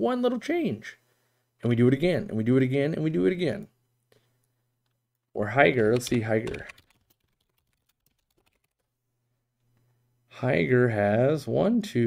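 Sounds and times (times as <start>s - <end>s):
computer keyboard typing: 5.7s - 8.9s.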